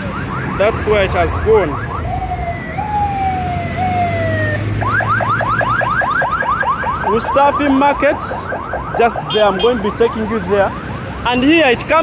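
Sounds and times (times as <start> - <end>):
passing traffic hum: 0.0 - 12.0
police siren: 0.0 - 12.0.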